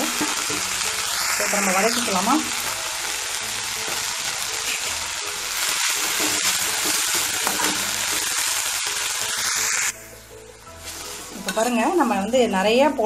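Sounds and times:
leaves sizzling in hot oil: 0.0s - 13.0s.

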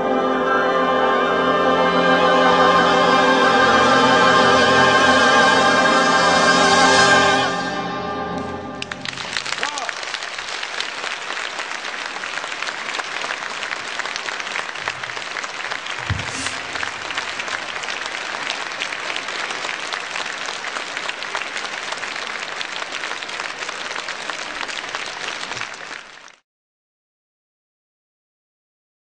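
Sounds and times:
audience applauding: 8.4s - 26.4s.

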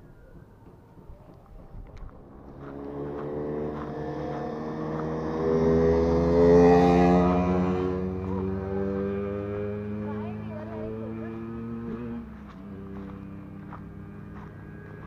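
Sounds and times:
vehicle engine passing: 1.1s - 15.0s.

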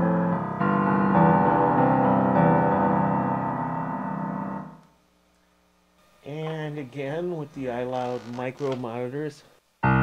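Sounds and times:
piano notes ringing out: 0.0s - 4.8s.

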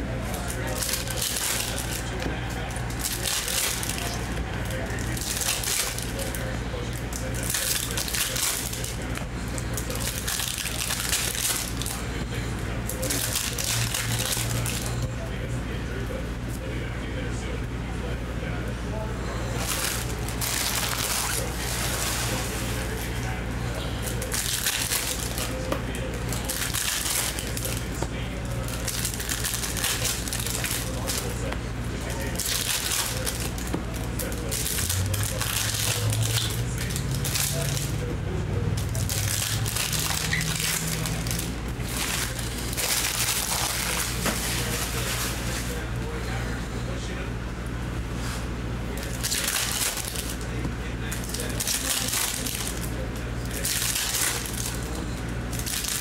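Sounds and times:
steady low hum: 0.0s - 56.0s
foil wrappers crinkling and tearing: 0.2s - 15.0s, 19.5s - 38.1s, 38.7s - 45.9s, 48.9s - 56.0s.

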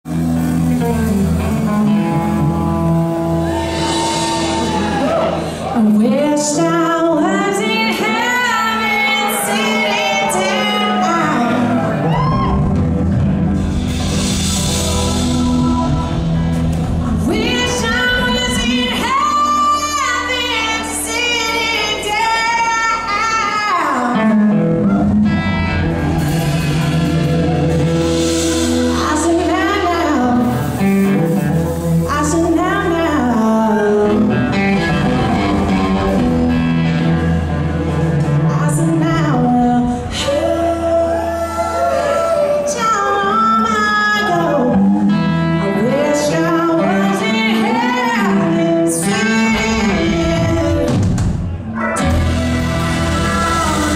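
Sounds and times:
bass guitar: 0.0s - 53.9s
drums: 0.0s - 53.9s
electric guitar: 0.0s - 53.9s
woman singing: 5.8s - 12.0s, 17.1s - 24.6s, 28.9s - 30.6s, 32.1s - 36.2s, 38.5s - 51.2s.

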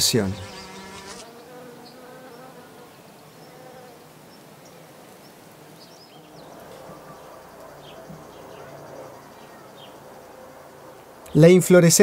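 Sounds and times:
bee buzzing: 0.0s - 11.2s.

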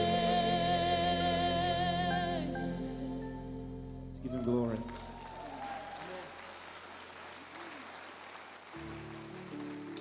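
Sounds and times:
congregation applauding: 4.2s - 10.0s.

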